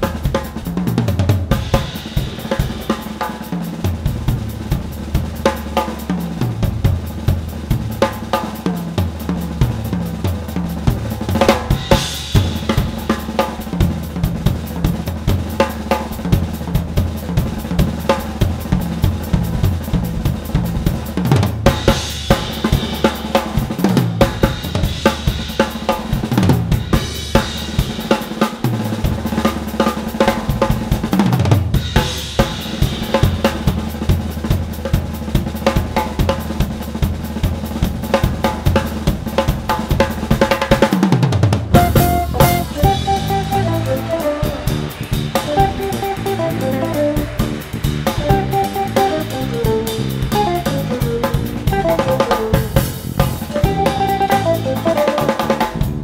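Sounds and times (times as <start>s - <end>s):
snare and bass drum strokes: 0.0s - 56.0s
cymbal crashes: 41.8s - 49.4s.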